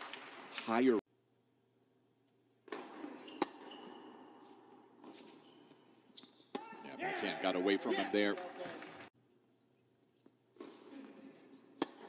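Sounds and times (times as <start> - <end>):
tennis shoes squeaking: 2.7 - 6.8
tennis ball impacts: 11.7 - 12.0.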